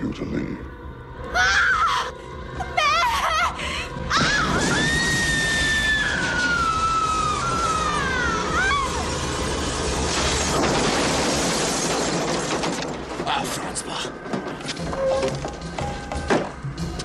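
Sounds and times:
high scream falling in pitch: 4.1s - 9.3s
loud crash with shattering: 4.2s - 13.4s
dramatic film music: 13.2s - 17.0s.

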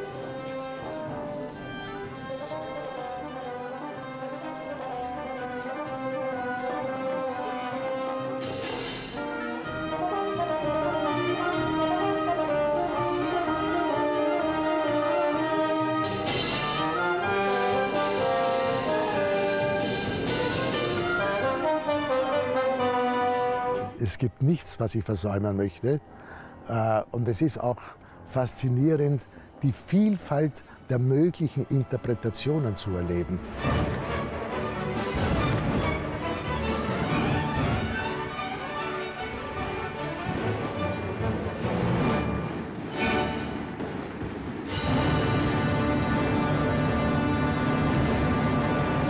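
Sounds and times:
brass playing: 0.0s - 24.0s, 31.2s - 43.8s, 44.7s - 49.0s
strings: 0.0s - 49.0s
orchestral crashes: 32.8s - 49.0s.

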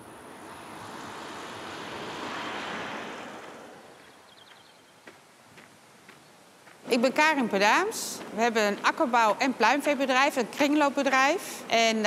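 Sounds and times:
road vehicle passing: 0.0s - 9.6s.

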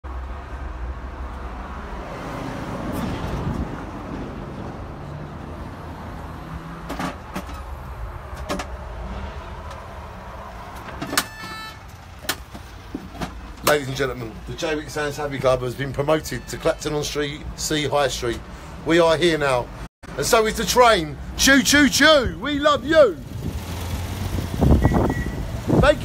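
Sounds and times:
traffic rumble: 0.0s - 26.0s.

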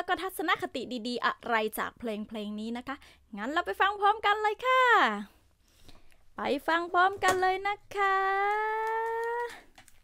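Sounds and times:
woman's long held voice: 6.4s - 9.7s
headphones rustling: 8.3s - 10.0s.

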